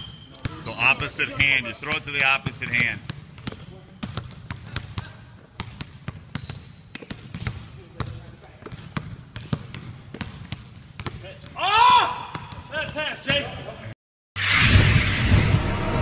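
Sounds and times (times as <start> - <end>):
sneaker squeaks: 0.0 - 1.6, 2.4 - 11.2, 12.3 - 13.7
basketball bouncing on wooden floor: 0.4 - 11.6, 12.3 - 13.5.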